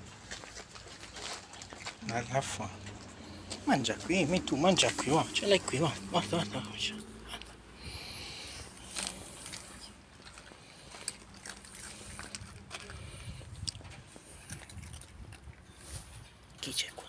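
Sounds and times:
cat crunching dry kibble: 0.0s - 17.0s.

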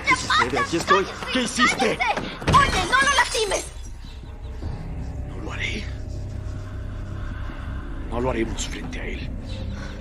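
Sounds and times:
low steady drone: 4.2s - 10.0s.

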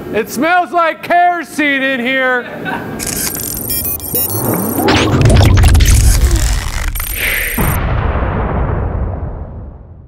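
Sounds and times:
deep boom with whoosh: 7.6s - 10.0s.

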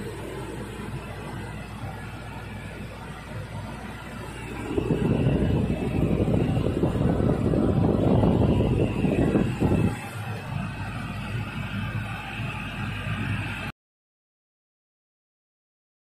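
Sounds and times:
tractor engine drone: 0.0s - 13.7s.

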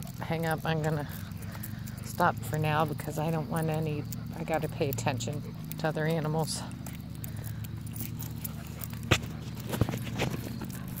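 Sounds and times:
steady low hum: 0.0s - 11.0s
footsteps on pavement: 6.6s - 11.0s.

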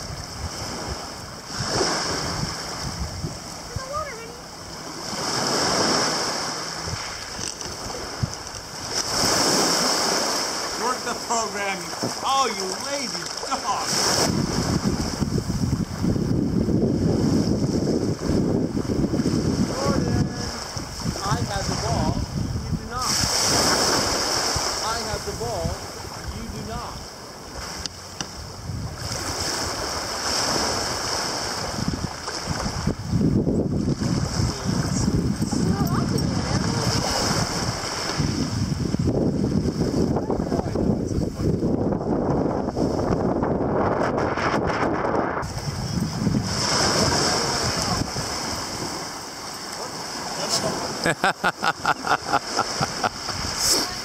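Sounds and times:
waves washing over pebbles: 0.0s - 41.6s, 45.4s - 54.0s
wind buffeting microphone: 0.0s - 51.0s, 51.7s - 54.0s.

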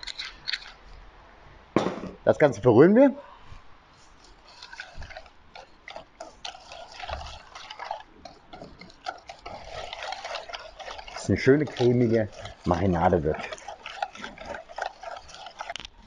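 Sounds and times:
whisk scraping metal bowl: 0.0s - 0.8s, 4.0s - 16.0s
liquid sloshing: 4.0s - 16.0s.

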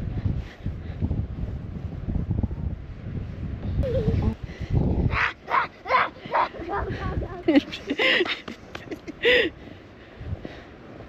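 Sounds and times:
wind buffeting microphone: 0.0s - 11.0s
high-pitched squeals of laughter: 3.8s - 4.4s, 5.1s - 7.9s.

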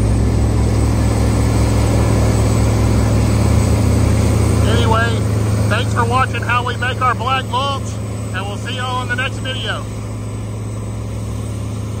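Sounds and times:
heavy machine engine humming: 0.0s - 12.0s.

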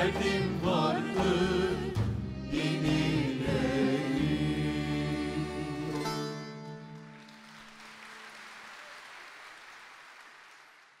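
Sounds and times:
audience applause: 7.0s - 11.0s.

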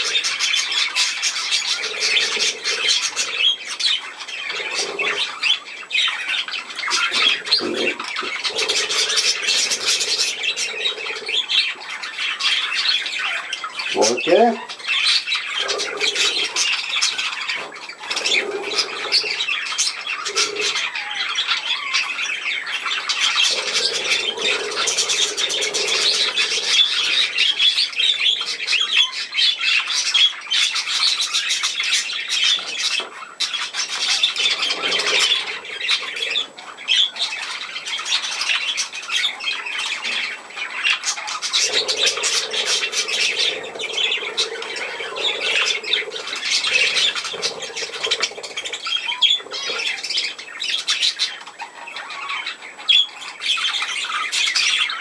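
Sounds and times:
budgerigars chattering and squawking: 0.0s - 55.0s.

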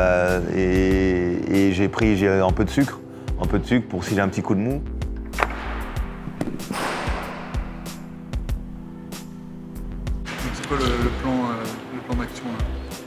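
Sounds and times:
music of held chords: 0.0s - 13.0s.

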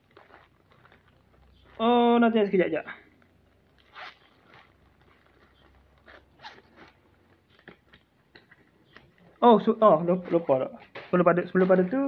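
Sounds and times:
package crinkling and rustling: 0.0s - 12.0s.

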